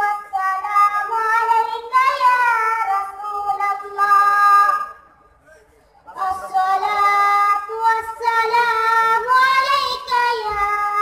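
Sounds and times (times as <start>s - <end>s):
boy chanting into a microphone: 0.0s - 5.0s, 6.2s - 11.0s.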